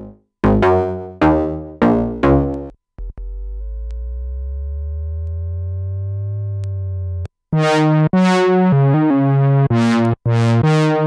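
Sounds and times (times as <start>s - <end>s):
synthesizer bass note sweeping: 0.0s - 11.0s.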